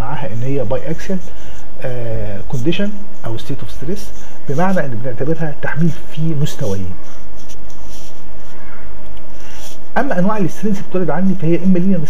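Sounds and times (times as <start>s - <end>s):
background hiss: 0.0s - 12.0s.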